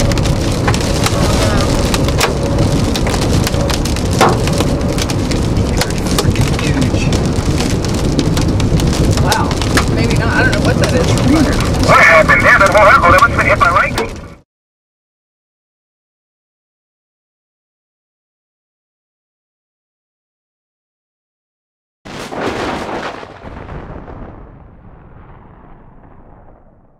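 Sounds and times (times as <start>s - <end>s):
rain and hail on car: 0.0s - 14.4s.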